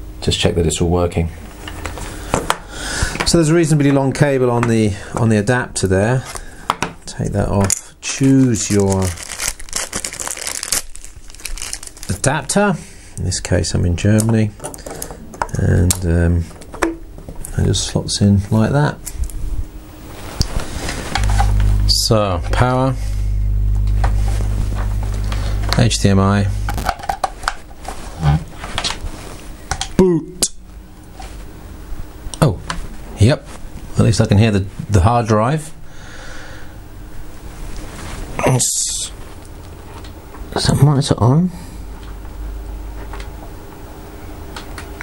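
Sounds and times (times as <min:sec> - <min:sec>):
plastic bag crinkling: 0:08.0 - 0:12.3.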